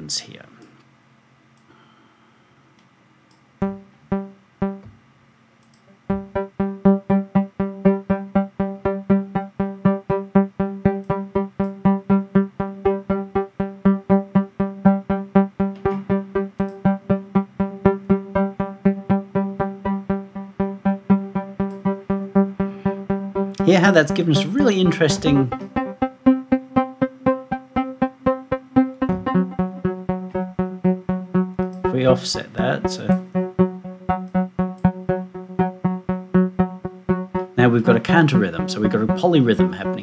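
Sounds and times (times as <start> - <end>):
synthesizer note repeating: 3.6 - 4.9, 6.1 - 40.0.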